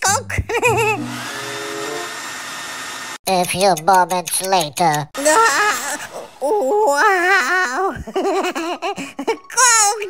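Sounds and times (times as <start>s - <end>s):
hair dryer running: 0.7s - 3.2s.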